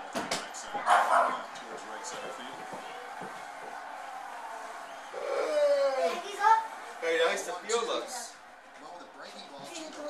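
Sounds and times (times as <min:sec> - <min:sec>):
crowd noise: 0:00.0 - 0:10.0.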